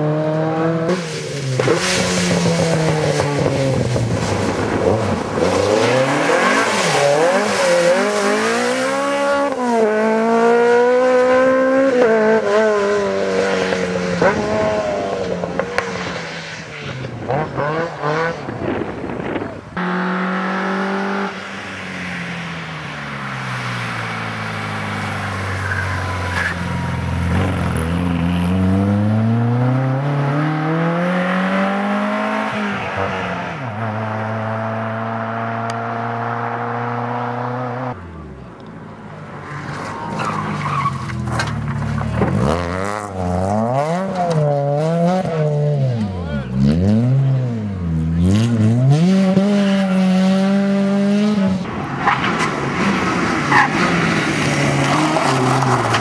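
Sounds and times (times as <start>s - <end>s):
rally car engines revving: 0.0s - 56.0s.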